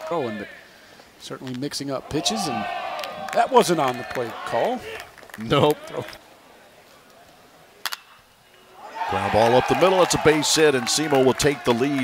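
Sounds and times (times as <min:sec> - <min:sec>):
stadium crowd ambience: 0:00.0 - 0:12.0.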